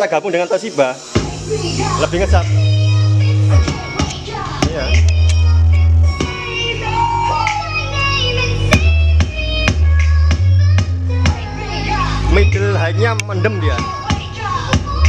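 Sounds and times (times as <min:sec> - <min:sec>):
long held bass notes: 0:01.2 - 0:13.8.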